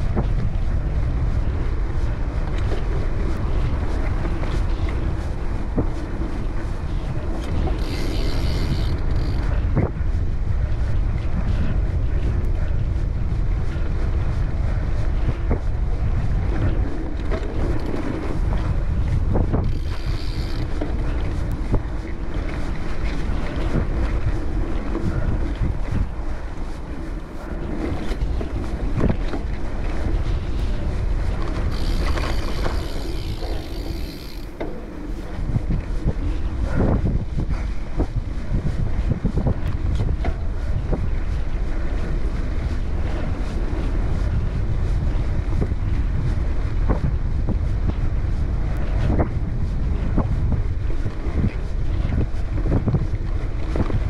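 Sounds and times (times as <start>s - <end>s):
wind buffeting microphone: 0.0s - 54.0s
bike knocks and rattles: 7.3s - 10.0s, 16.5s - 21.9s, 31.4s - 35.8s.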